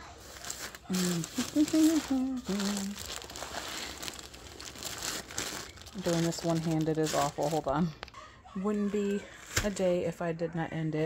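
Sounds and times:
plastic bag crinkling: 0.0 - 8.2.

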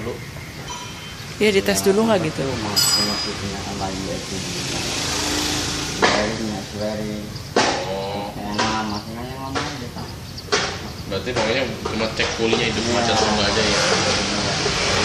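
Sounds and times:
people talking: 0.0 - 0.3, 1.4 - 4.9, 6.0 - 10.2, 11.1 - 15.0.

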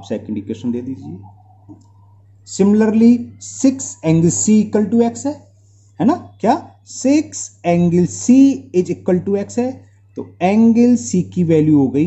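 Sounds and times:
person speaking: 0.0 - 12.0
steady low hum: 0.0 - 12.0.

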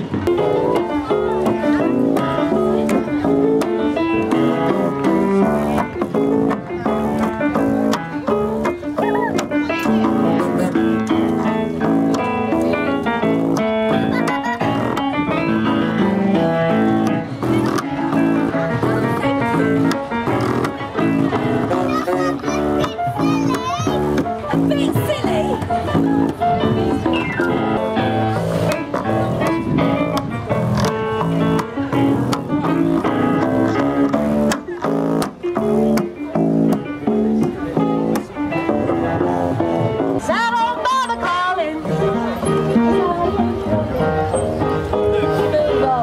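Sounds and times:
plucked double bass: 0.0 - 46.0
upright piano: 0.0 - 46.0.

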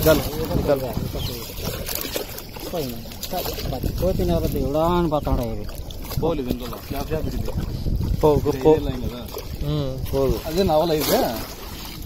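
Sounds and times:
men talking: 0.0 - 11.5
water splashing from wading: 0.0 - 12.0
wind on microphone: 0.0 - 12.0.

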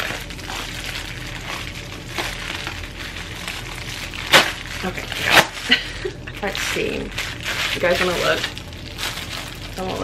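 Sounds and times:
plastic mailer crinkling: 0.0 - 10.0
plastic mailer ripping: 0.0 - 10.0.

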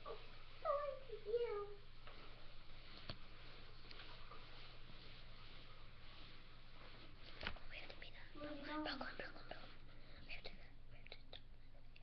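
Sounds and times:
child whispering: 7.7 - 11.5.

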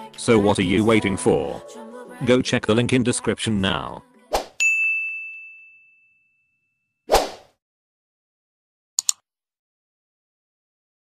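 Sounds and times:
bell-like ding: 4.6 - 6.9.

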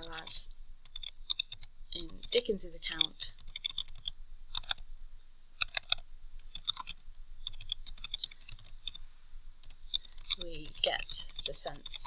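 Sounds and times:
computer keyboard key clicks: 3.4 - 4.8.

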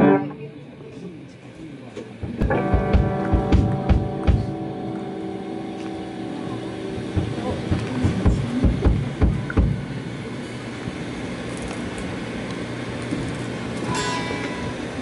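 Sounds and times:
guitar chord ringing: 0.0 - 0.6, 2.4 - 8.0, 13.8 - 15.0
amplifier and room rumble: 0.0 - 15.0
low drum thumps: 2.2 - 4.8, 6.9 - 10.0.

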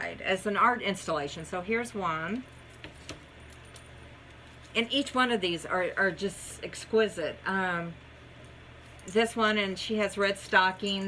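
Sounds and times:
woman speaking: 0.0 - 2.4, 4.8 - 8.0, 9.1 - 11.0
metal bangles clinking: 8.8 - 11.0.

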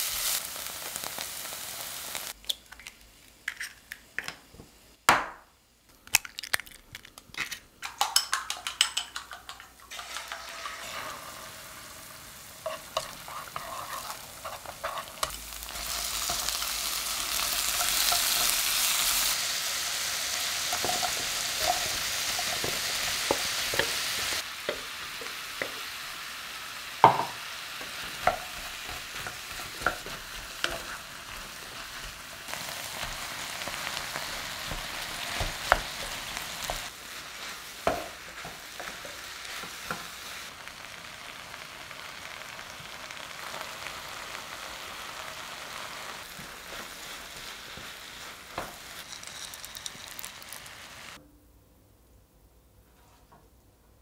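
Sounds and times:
food sizzling in a frying pan: 0.0 - 3.7, 8.4 - 51.2
spatula scraping pan: 9.9 - 19.1.

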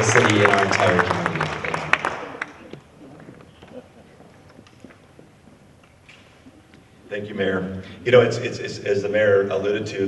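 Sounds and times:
audience applause: 0.0 - 3.4.

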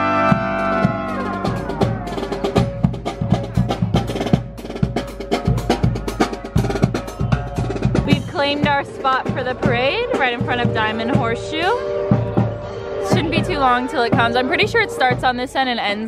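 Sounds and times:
brass held chord bending down: 0.0 - 2.6, 10.0 - 15.3
snare and bass drum march: 0.0 - 15.6.

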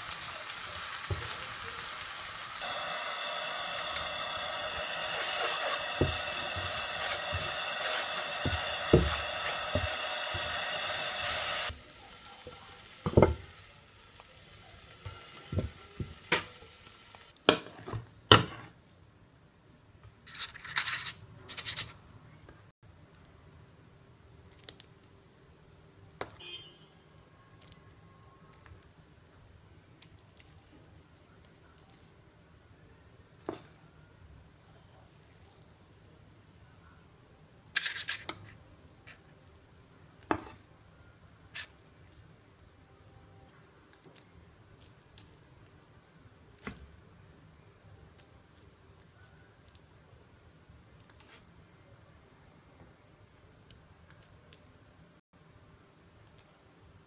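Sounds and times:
apples sizzling in a frying pan: 0.0 - 18.6
spatula scraping and tapping pan: 3.8 - 11.7, 40.3 - 40.6.

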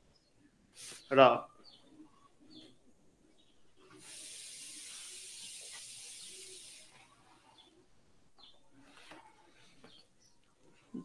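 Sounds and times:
high-pitched hiss: 0.8 - 1.2, 3.9 - 7.8.

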